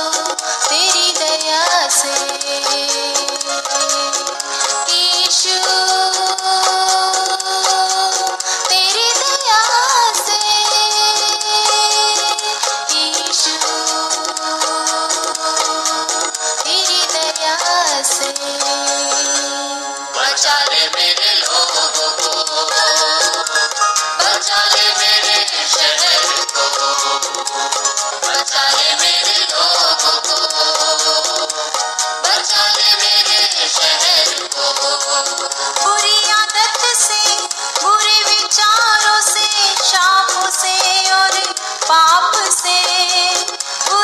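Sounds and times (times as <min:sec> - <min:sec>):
steady ticking beat: 0:00.0 - 0:19.6, 0:20.2 - 0:44.0
keyboard backing: 0:00.0 - 0:44.0
person singing: 0:00.0 - 0:44.0
steady beat: 0:20.2 - 0:35.5.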